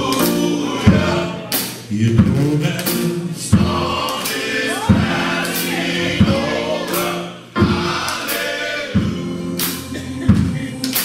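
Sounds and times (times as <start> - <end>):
keyboard accompaniment: 0.0 - 11.0
men's choir singing in harmony: 0.0 - 11.0.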